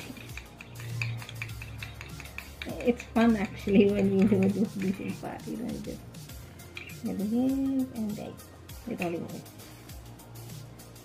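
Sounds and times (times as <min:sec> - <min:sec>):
spoon clicking against cup: 0:00.0 - 0:05.1, 0:06.6 - 0:07.0.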